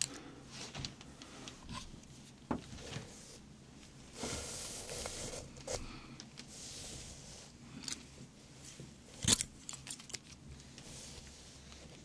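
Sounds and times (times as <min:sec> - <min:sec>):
soft rustling: 0:00.5 - 0:09.3, 0:10.3 - 0:12.0.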